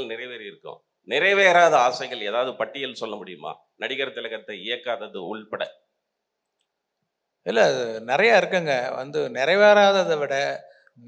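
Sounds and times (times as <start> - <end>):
man speaking into a microphone: 0.0 - 5.7, 7.5 - 10.6
faint clicks: 6.4 - 7.1.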